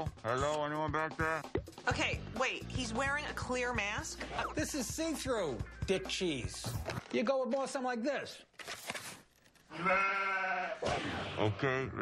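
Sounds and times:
goat bleating: 0:09.7 - 0:10.8.

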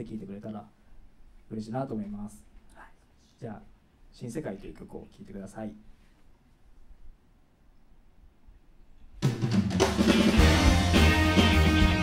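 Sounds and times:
rock band playing: 0:09.2 - 0:12.0.

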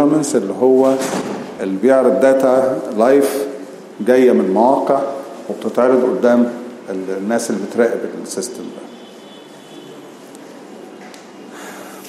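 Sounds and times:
man breathing into microphone: 0:11.5 - 0:12.0.

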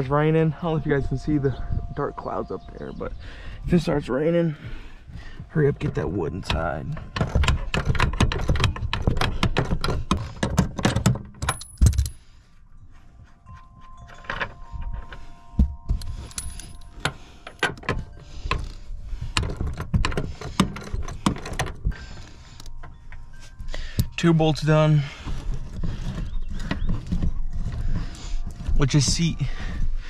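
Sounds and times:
metal clinks: 0:11.4 - 0:26.2.

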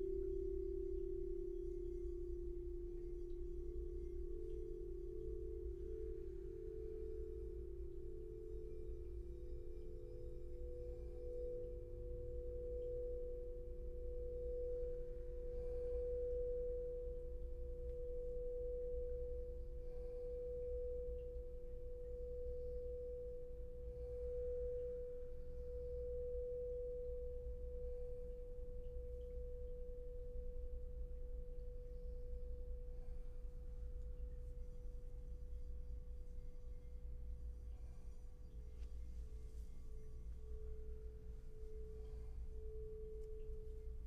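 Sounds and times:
lower bowl tones: 0:00.0 - 0:44.0
singing bowl ringing: 0:00.0 - 0:44.0.

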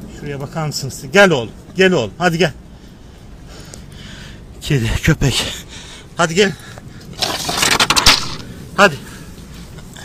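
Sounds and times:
sharp cracks: 0:07.0 - 0:08.6
scraping and rustling: 0:07.2 - 0:08.5.

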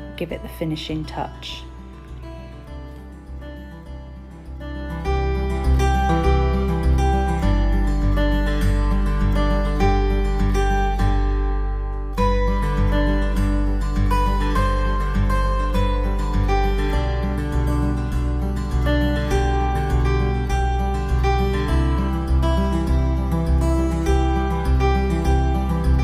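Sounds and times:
plucked string music: 0:00.0 - 0:26.0
deep bass: 0:12.3 - 0:26.0.

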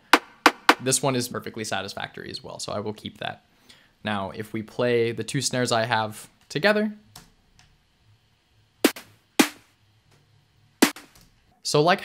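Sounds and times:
synthesized snare drum hits: 0:00.0 - 0:00.9, 0:08.8 - 0:09.7, 0:10.8 - 0:11.1.

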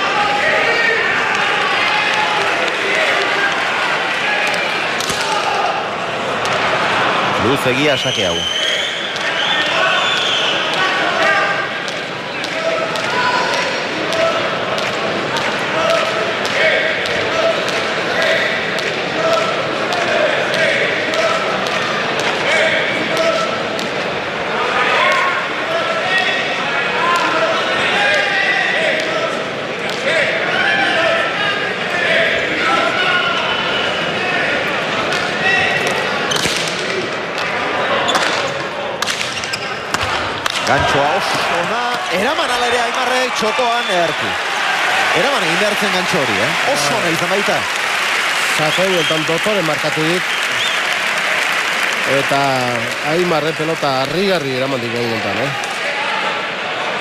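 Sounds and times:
murmur of voices: 0:00.0 - 0:57.0.

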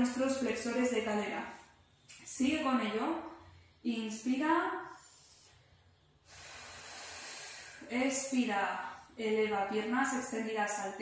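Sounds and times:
woman breathing in deeply: 0:04.9 - 0:07.9.

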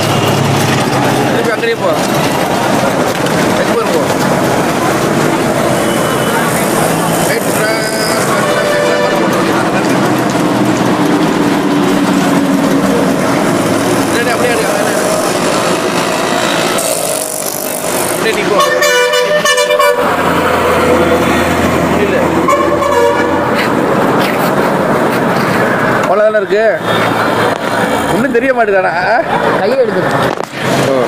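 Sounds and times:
street traffic noise: 0:00.0 - 0:31.0
vehicle horns: 0:05.6 - 0:10.2, 0:18.3 - 0:20.4, 0:22.4 - 0:23.8.

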